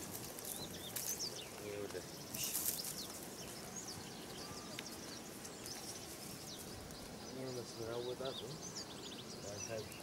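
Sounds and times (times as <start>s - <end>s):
outdoor background noise: 0.0s - 10.0s
small birds chirping: 0.0s - 10.0s.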